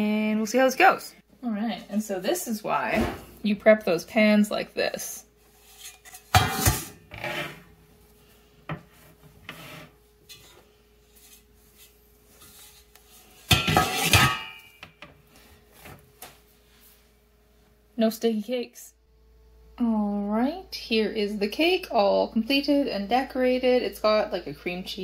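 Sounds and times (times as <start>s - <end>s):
metal pans clattering on wire rack: 5.8s - 7.6s, 13.4s - 14.8s.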